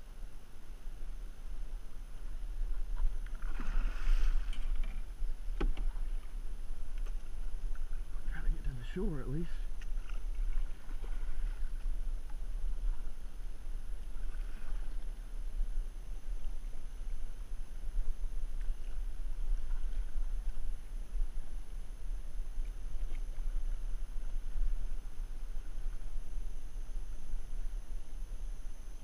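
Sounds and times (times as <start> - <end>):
paddle splashing water: 1.6 - 26.2.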